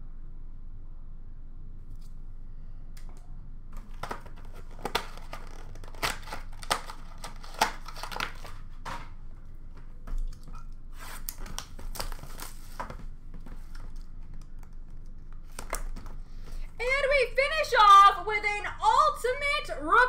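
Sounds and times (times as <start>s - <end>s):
card packaging crinkling: 3.8s - 16.8s.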